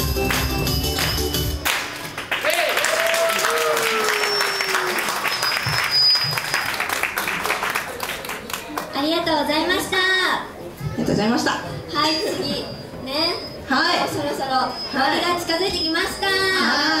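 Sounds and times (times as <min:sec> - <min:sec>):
pop backing track: 0:00.0 - 0:01.7
audience applause: 0:00.2 - 0:09.0
people cheering: 0:01.8 - 0:08.8.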